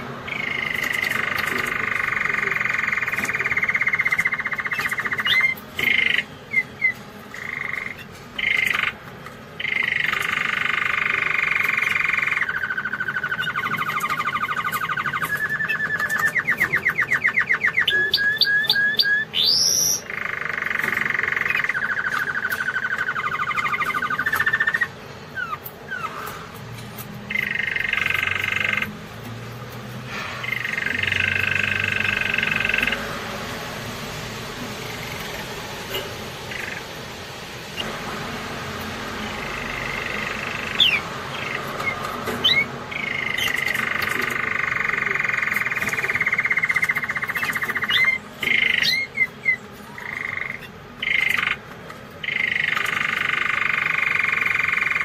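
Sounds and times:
canary singing: 0:00.0 - 0:55.0.

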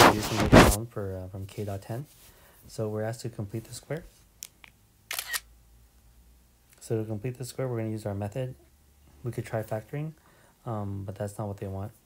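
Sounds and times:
camera shutter double click: 0:05.1 - 0:05.5.

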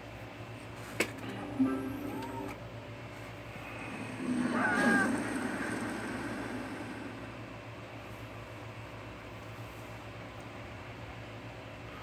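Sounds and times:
steady low hum: 0:00.0 - 0:12.0
squeaky cry-like glides: 0:03.6 - 0:07.2
cartoon rushing swell: 0:03.7 - 0:07.5.

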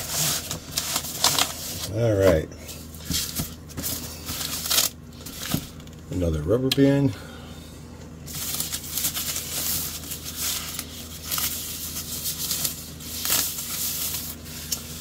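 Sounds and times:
plastic wrapping crinkling: 0:00.0 - 0:02.0, 0:03.0 - 0:06.0, 0:08.3 - 0:15.0.

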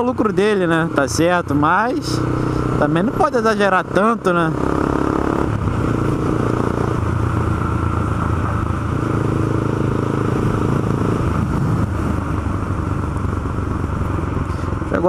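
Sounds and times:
motorcycle engine cruising: 0:00.0 - 0:15.0
road and wind noise: 0:00.0 - 0:15.0.

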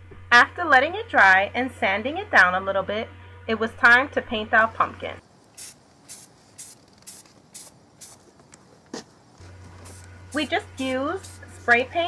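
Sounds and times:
spray paint can hissing: 0:05.5 - 0:08.4, 0:09.6 - 0:12.0.

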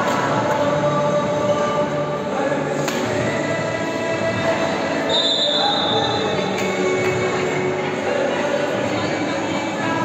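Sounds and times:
echoing crowd din indoors: 0:00.0 - 0:10.0.

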